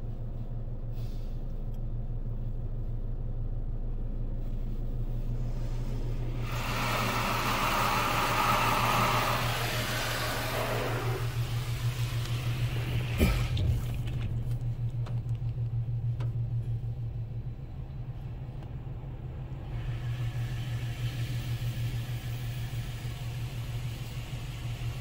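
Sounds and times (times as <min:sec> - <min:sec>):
low machinery hum: 0:00.0 - 0:25.0
water spray hissing on car: 0:06.4 - 0:13.4, 0:19.8 - 0:25.0.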